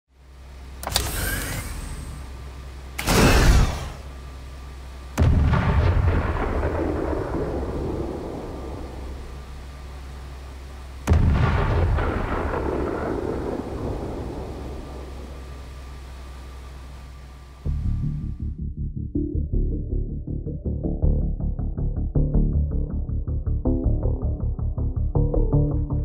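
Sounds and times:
low steady drone: 0.1s - 26.0s
deep cinematic booms: 5.2s - 9.7s, 11.0s - 15.7s
pulsing electronic music: 17.7s - 26.0s.

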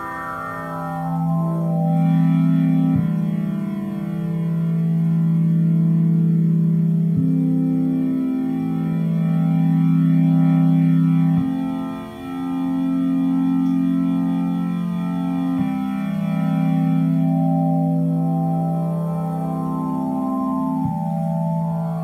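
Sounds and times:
synthesizer chords: 0.0s - 22.0s.

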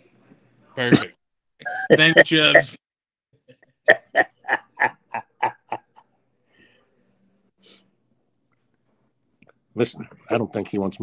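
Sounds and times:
man laughing: 3.9s - 6.0s.

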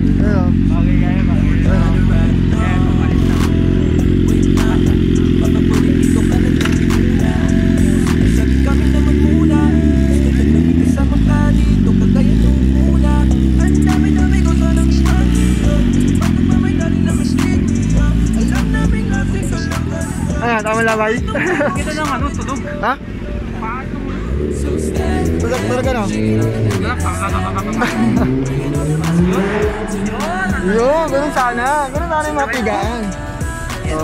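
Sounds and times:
loud music with heavy bass: 0.0s - 23.0s, 24.2s - 34.0s
background voices: 0.0s - 34.0s
motorcycle engines running: 0.0s - 34.0s.

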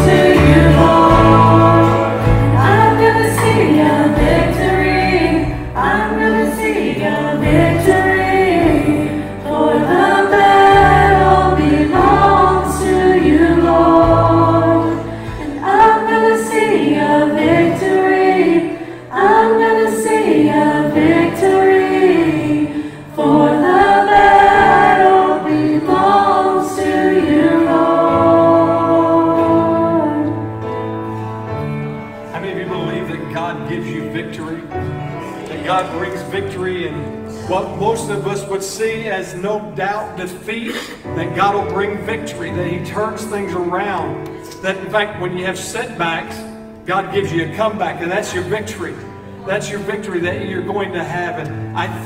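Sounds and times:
live band playing: 0.0s - 6.0s
bass line: 0.0s - 6.4s, 7.0s - 15.0s
group singing in harmony: 0.0s - 32.9s.

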